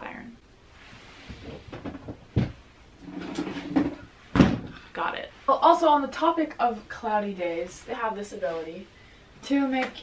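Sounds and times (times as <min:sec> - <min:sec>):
things moved and scraped in cupboard: 0:03.0 - 0:04.1.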